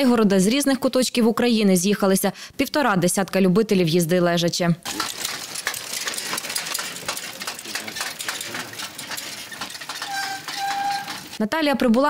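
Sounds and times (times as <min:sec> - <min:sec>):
trike wheels clicking and rattling: 0:04.8 - 0:11.4
tyres rolling on dirt: 0:04.9 - 0:11.4
faint voices: 0:05.8 - 0:11.3.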